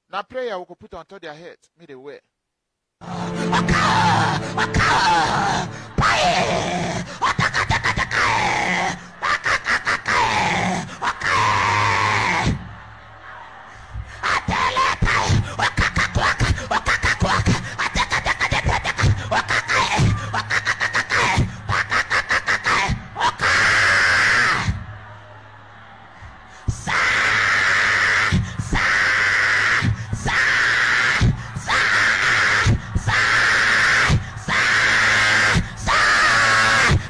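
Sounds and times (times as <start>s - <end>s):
man wailing: 3.0s - 8.9s.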